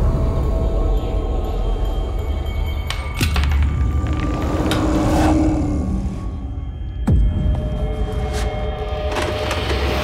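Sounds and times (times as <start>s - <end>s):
dark horror score rumble: 0.0s - 10.0s.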